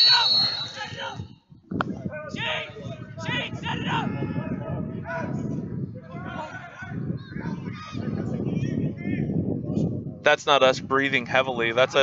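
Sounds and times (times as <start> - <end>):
distant shouted calls: 0.0 - 1.2
breath and wind on microphone: 0.4 - 12.0.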